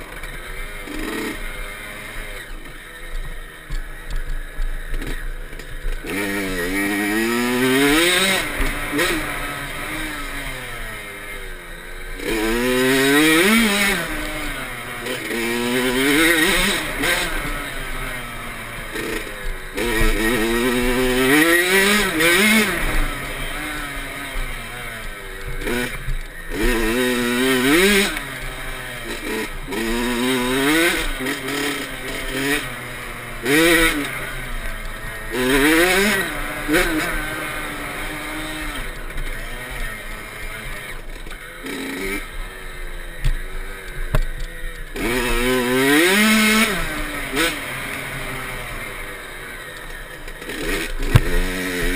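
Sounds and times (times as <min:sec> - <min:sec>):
dirt bike engine revving: 0:00.0 - 0:51.9.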